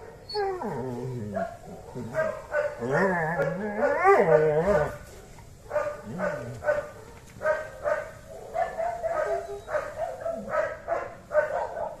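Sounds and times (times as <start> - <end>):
dog yipping: 1.4 - 4.9, 5.7 - 12.0.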